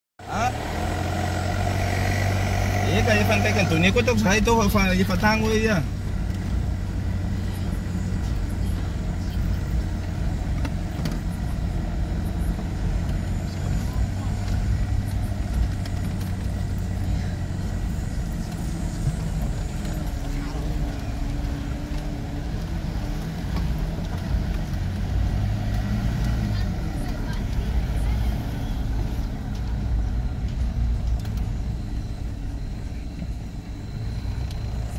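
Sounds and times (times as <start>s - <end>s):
car engine and road noise: 0.2s - 34.9s.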